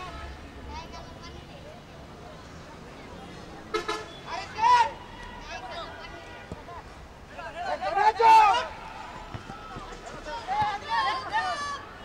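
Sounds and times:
footballers shouting: 4.2 - 12.0.

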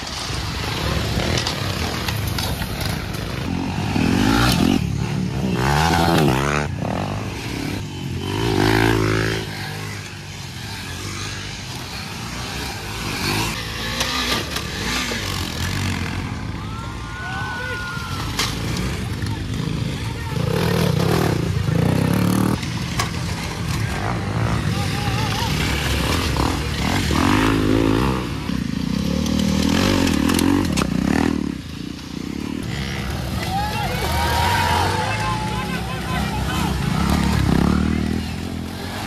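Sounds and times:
motorcycle engines revving: 0.0 - 39.0
people's voices: 15.5 - 28.8, 32.5 - 39.0.

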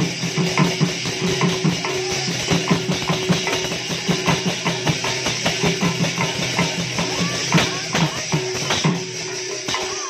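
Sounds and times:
barrel drums played by hand: 0.0 - 10.0
high shimmer: 0.0 - 10.0.

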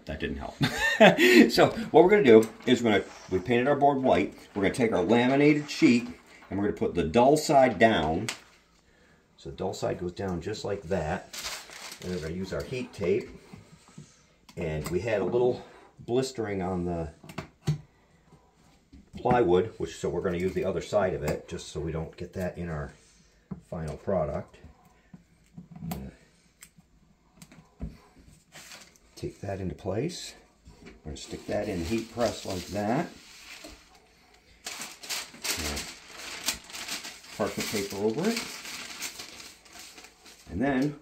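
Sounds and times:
paper rustling and crackling: 0.6 - 8.6, 10.6 - 13.7, 30.7 - 41.0.

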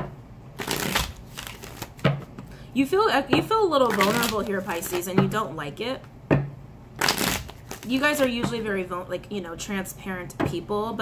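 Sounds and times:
cards being shuffled: 0.6 - 2.2, 3.8 - 5.1, 7.0 - 8.4.

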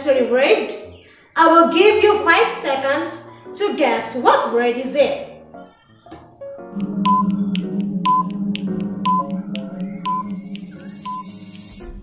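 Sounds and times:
background music: 0.0 - 12.0
fast clock-like ticking: 6.7 - 11.8
short beeps: 6.7 - 11.8.

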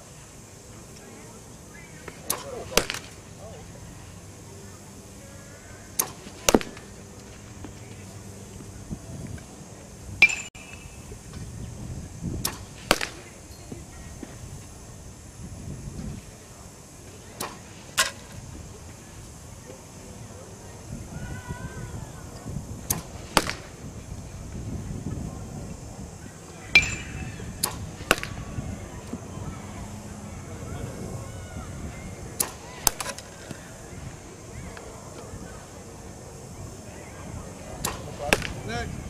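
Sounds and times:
bat cracking ball: 2.0 - 3.3, 5.9 - 8.1, 10.2 - 10.8, 12.4 - 13.4, 17.4 - 18.4, 22.8 - 23.8, 26.7 - 28.6, 32.4 - 33.6, 37.8 - 38.7
pitching machine firing: 5.9 - 8.4, 22.7 - 24.1, 26.6 - 30.3.

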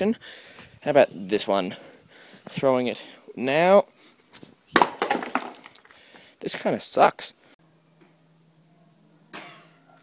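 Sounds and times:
speaker cracking on concrete: 4.7 - 6.0.

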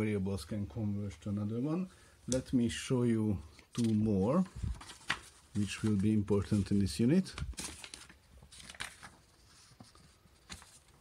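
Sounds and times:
paper rustling: 3.5 - 11.0.

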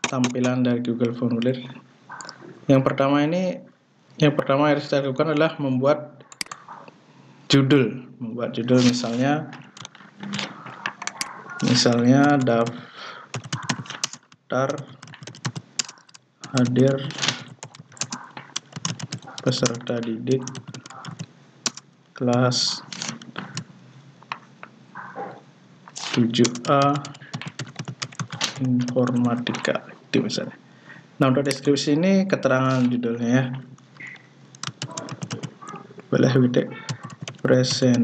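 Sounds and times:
typing on computer keyboard: 0.0 - 0.6, 10.8 - 23.7, 26.0 - 29.6, 34.0 - 35.8, 36.9 - 38.0.

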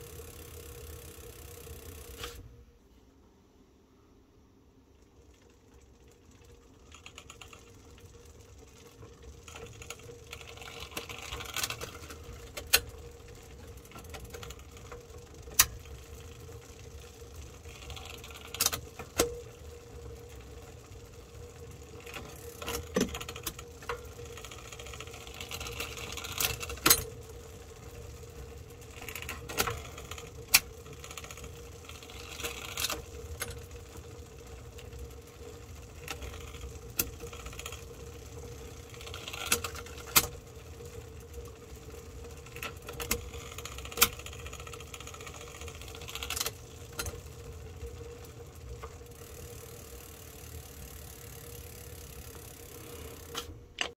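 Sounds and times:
bicycle chain whirring: 0.0 - 2.4, 4.9 - 53.9
derailleur clicks and clunks: 6.4 - 28.2, 28.8 - 53.9.

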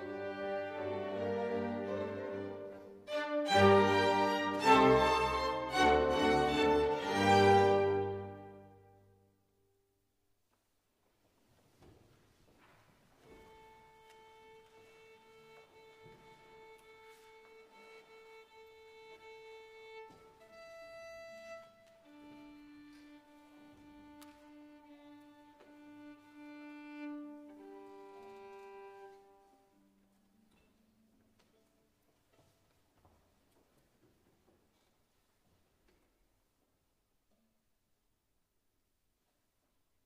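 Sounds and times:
violin long bowed notes: 0.0 - 8.9, 13.4 - 30.2.

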